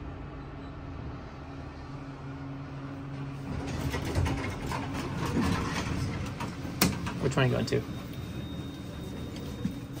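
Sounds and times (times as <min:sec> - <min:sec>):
elevator hum: 0:00.0 - 0:10.0.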